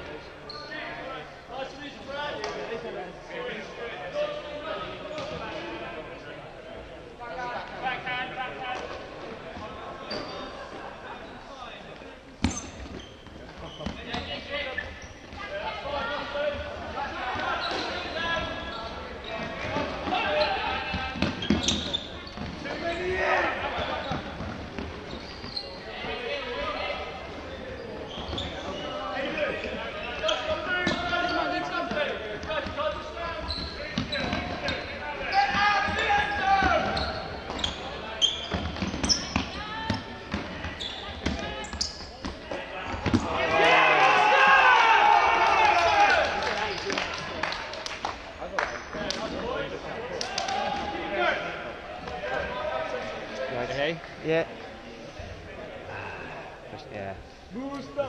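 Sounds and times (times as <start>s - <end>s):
players shouting in a hall: 22.7s - 24.1s, 35.0s - 37.4s, 43.0s - 47.1s.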